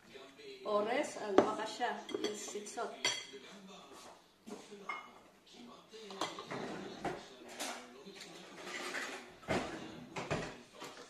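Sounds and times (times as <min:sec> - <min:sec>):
cutlery clinking on plates: 0:02.1 - 0:03.4, 0:04.8 - 0:05.2, 0:06.0 - 0:11.0.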